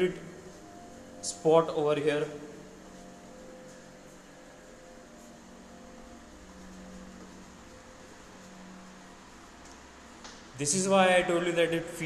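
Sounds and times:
faint mechanical hum: 0:00.0 - 0:12.0
low steady tone: 0:00.0 - 0:12.0.

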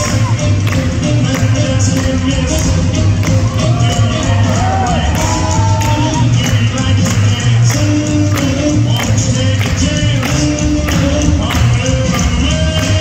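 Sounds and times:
boogie woogie dance music: 0:00.0 - 0:13.0.

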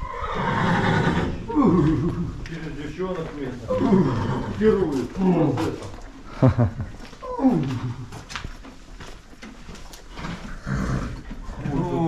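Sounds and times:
horse whinnying: 0:00.0 - 0:02.4, 0:03.6 - 0:06.0, 0:10.2 - 0:12.0.

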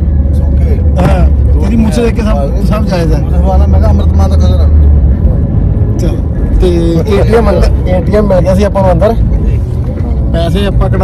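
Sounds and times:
car driving rumble from inside: 0:00.0 - 0:11.0.

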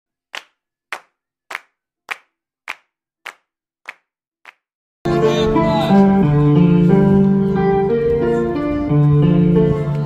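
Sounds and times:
hands clapping: 0:00.3 - 0:04.7.

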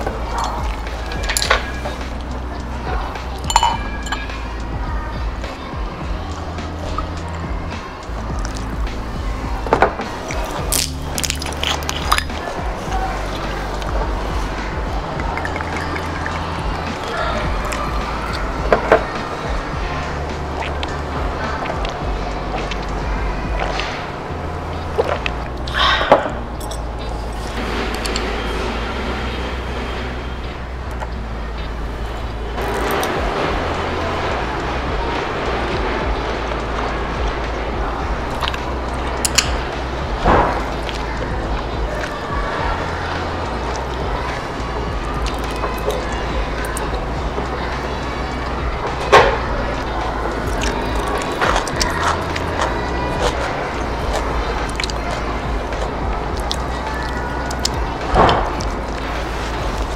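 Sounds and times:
bottle clinking on glass: 0:03.4 - 0:04.4, 0:26.0 - 0:26.9.

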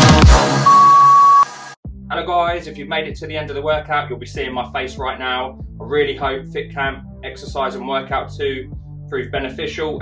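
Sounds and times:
electronic music: 0:00.0 - 0:01.8
high timer beep: 0:00.6 - 0:01.5.

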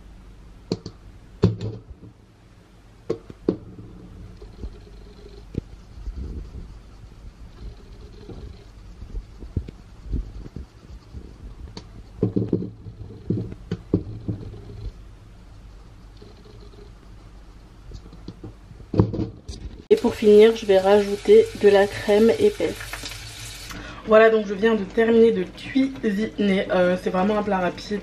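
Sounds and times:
faint steady hum: 0:00.0 - 0:28.0.

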